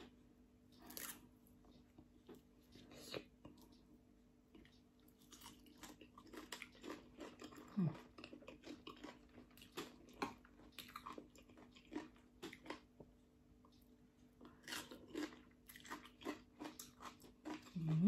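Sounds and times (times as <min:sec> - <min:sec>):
person chewing wet crunches: 0:04.5 - 0:13.2, 0:14.4 - 0:18.0.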